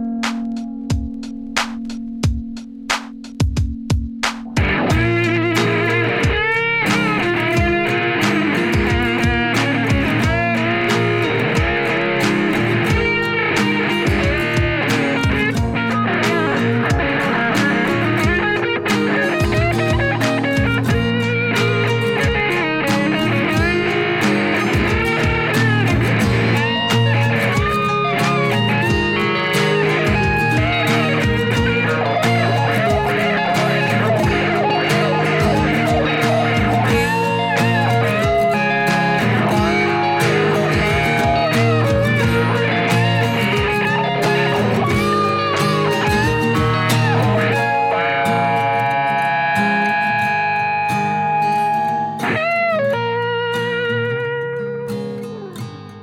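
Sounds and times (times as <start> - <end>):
backing with regular beat: 0.0 - 55.8
electric guitar lead line: 0.0 - 56.0.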